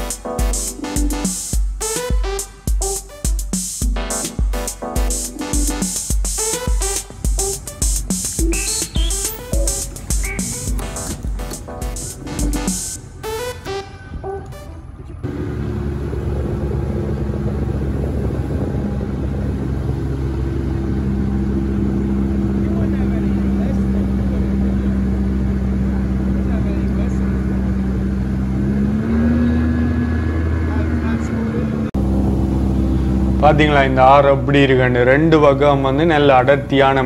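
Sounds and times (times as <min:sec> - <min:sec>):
outboard motor running: 0:14.8 - 0:37.0.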